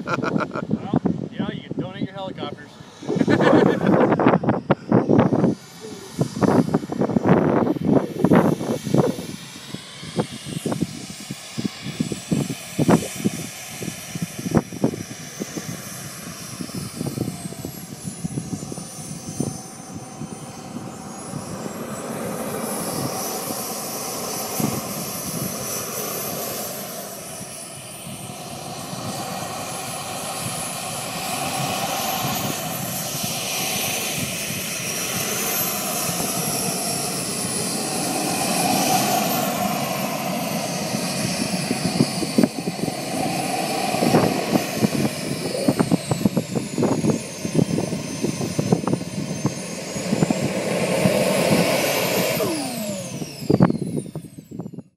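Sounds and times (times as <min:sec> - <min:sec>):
model jet turbine whining: 0:00.0 - 0:54.9.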